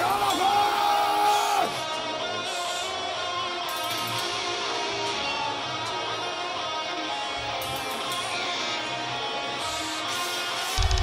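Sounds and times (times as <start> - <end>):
electric guitars sustained chords: 0.0 - 11.0
live extreme metal band: 0.0 - 11.0.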